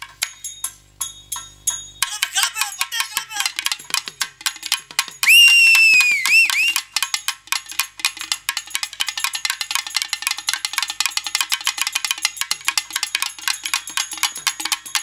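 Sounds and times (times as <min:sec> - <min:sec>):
fast clicking percussion: 0:00.0 - 0:15.0
shrill warbling whistle: 0:05.2 - 0:06.8.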